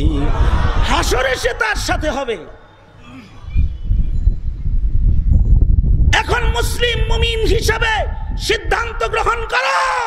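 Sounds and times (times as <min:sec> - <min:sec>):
loud low fluctuating rumble: 0:00.0 - 0:02.6.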